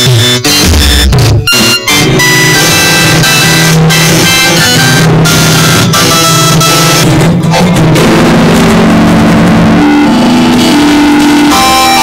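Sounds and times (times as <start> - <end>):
loud song music: 0.0 - 12.0.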